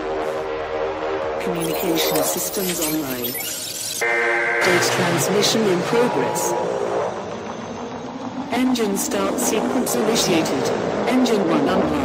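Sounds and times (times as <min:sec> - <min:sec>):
sliding synth lines: 0:01.4 - 0:04.1.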